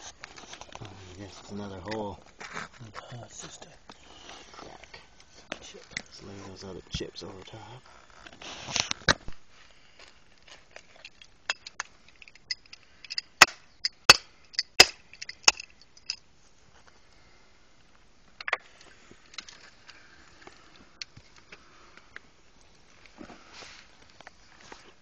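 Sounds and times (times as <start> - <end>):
gritty scrape of dirt: 0.0 - 11.2, 22.9 - 25.0
clay shards clinking: 10.8 - 16.3.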